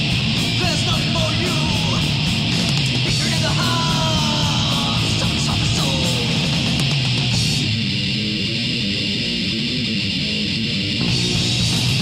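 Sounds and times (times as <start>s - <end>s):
bass guitar: 0.0s - 12.0s
distorted electric guitar riff: 0.0s - 12.0s.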